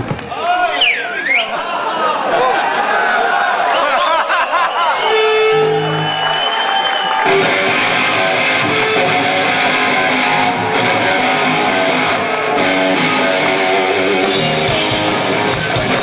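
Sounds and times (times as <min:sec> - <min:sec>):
loud electric guitar chord riffing: 0:07.3 - 0:16.0.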